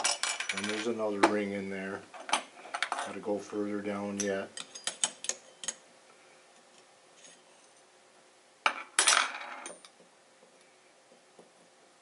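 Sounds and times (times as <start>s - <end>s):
metal tool clicking and scraping: 4.6s - 5.8s.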